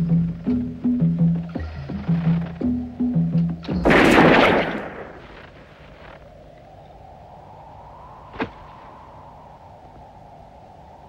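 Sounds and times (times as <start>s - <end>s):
film score with pulsing low notes: 0.0s - 11.0s
low steady hum: 0.0s - 11.0s
revolver shot: 3.8s - 5.5s.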